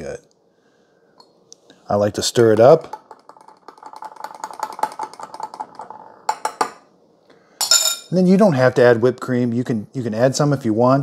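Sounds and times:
sharp spoon clinks: 7.6s - 8.1s.

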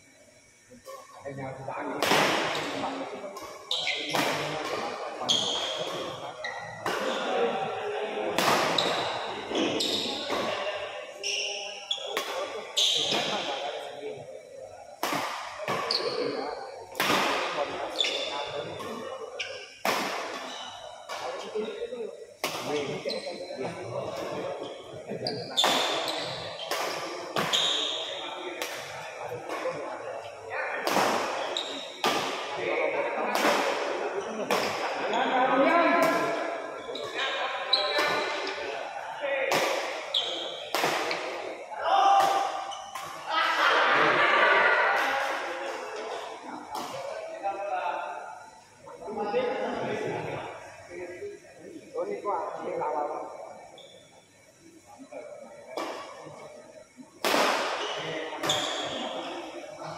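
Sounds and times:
people talking: 0.7s - 54.2s, 54.8s - 59.9s.

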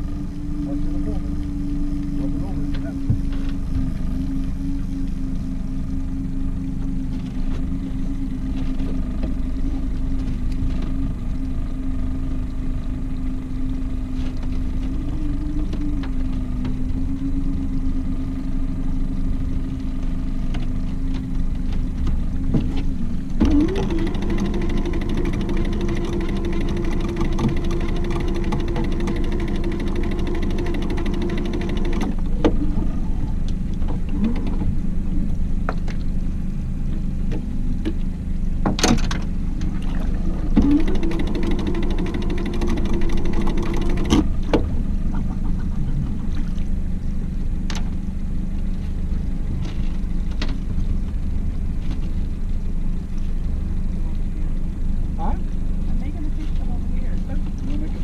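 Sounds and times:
outboard motor humming: 0.0s - 58.0s
electric winch whirring: 23.0s - 33.0s, 38.9s - 45.0s.

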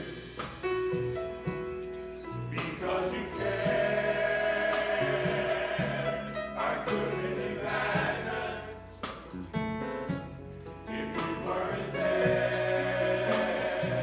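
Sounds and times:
men's gospel choir singing: 0.0s - 1.6s, 2.2s - 14.0s
drum and cymbal hits: 0.0s - 10.4s
organ: 0.0s - 14.0s
piano: 0.0s - 14.0s.

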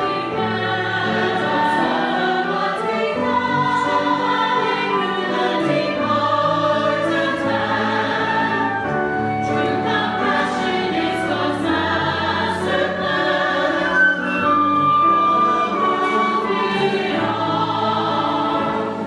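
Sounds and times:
church choir singing in harmony: 0.0s - 19.0s
instrumental accompaniment: 0.0s - 19.0s.

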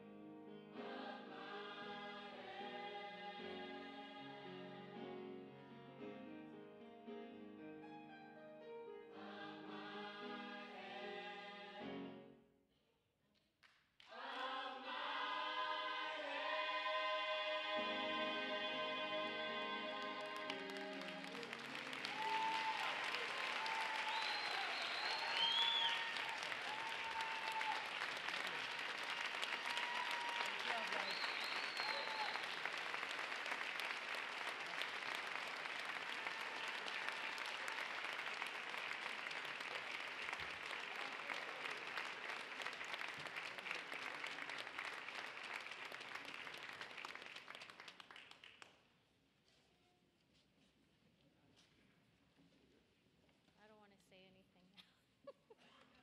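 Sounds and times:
choir singing: 0.7s - 5.3s, 9.1s - 12.2s, 14.1s - 22.8s
audience applause: 18.7s - 48.7s.

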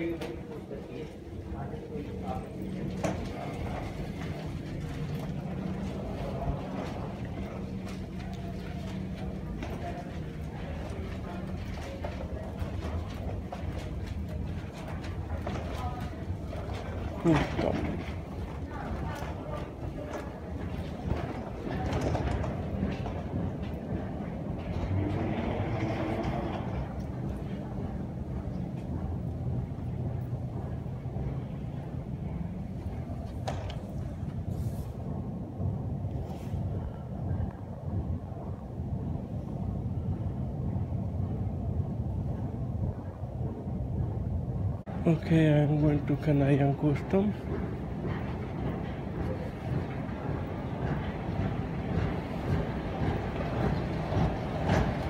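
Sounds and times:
faint voices: 0.0s - 55.0s
terminal building hum: 0.0s - 55.0s.

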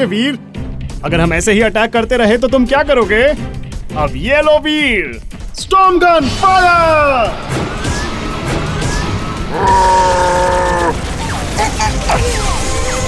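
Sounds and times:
cartoon action music: 5.6s - 13.0s
voice-like cry falling in pitch: 9.5s - 11.0s.

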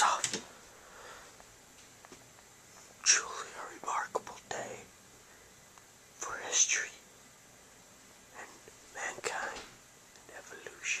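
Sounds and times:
man whispering: 0.0s - 0.5s, 2.9s - 5.0s, 6.2s - 7.1s, 8.3s - 11.0s.

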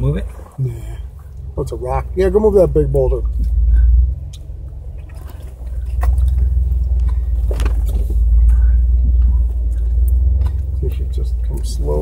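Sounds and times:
engine rumbling: 0.0s - 12.0s.

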